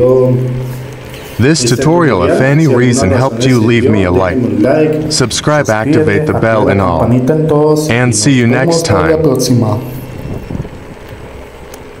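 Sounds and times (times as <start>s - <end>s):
wind rumbling on microphone: 9.8s - 11.4s.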